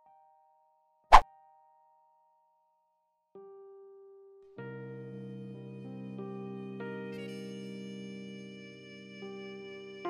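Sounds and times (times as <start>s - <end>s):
background piano music: 3.4s - 10.0s.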